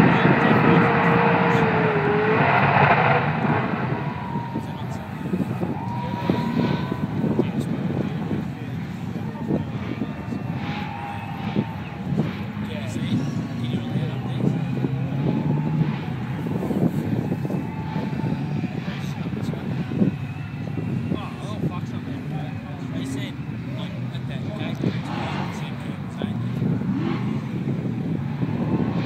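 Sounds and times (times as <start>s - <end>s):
car engines running: 0.0s - 29.0s
crowd chatter: 0.0s - 29.0s.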